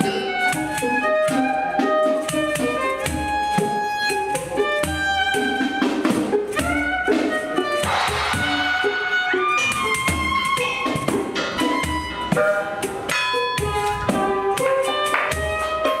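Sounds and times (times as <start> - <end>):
pandeiro drum and jingles: 0.0 - 16.0
violins playing melody: 0.0 - 16.0.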